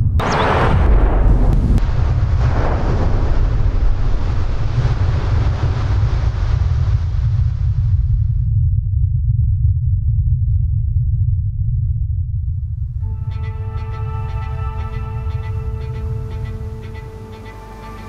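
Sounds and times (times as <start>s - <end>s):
rushing wind-like noise: 0.0s - 9.3s
deep rumble: 0.0s - 18.0s.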